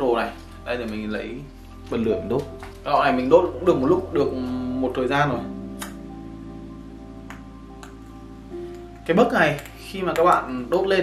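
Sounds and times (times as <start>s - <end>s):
soft guitar music: 0.0s - 11.0s
lighter clicks: 5.8s - 6.0s.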